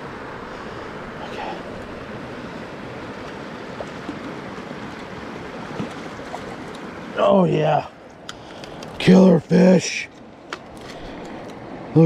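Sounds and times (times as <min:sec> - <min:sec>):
stream water rushing: 0:00.0 - 0:12.0.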